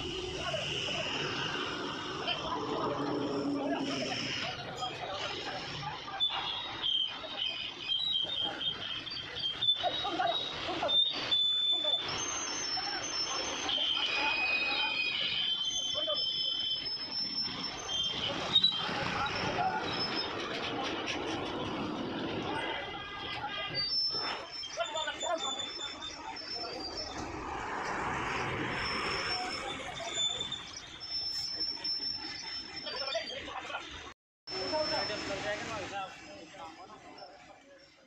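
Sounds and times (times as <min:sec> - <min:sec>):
high metallic squeals: 0:00.0 - 0:38.0.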